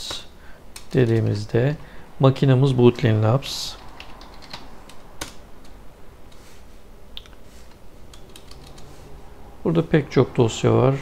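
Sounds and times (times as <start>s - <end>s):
computer keyboard keystrokes: 3.8s - 5.8s, 8.1s - 8.9s.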